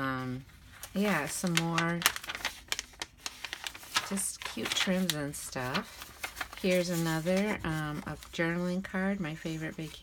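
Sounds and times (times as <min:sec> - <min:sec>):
paper pages rustling and clicking: 0:00.4 - 0:08.4.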